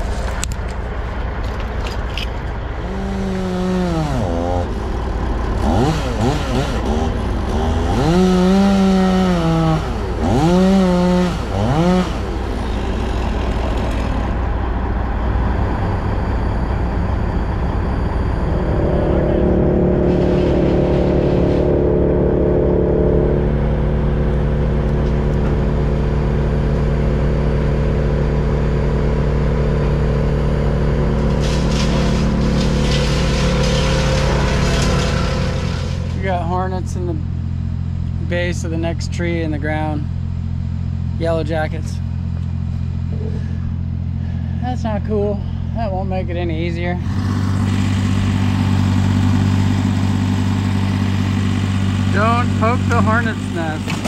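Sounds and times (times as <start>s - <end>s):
engine revving and droning: 0.0s - 44.6s, 46.8s - 54.0s.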